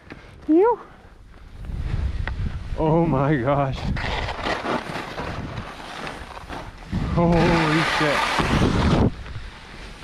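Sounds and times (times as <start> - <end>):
wind on microphone: 1.5 - 4.4, 6.6 - 9.6
skis swishing through snow: 3.5 - 10.0.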